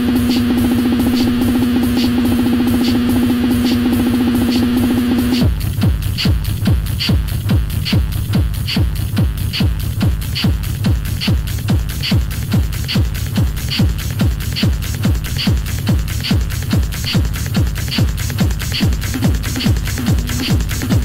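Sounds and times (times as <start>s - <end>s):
fast ticking hi-hat: 0.0s - 21.0s
pounding kick drum: 0.0s - 21.0s.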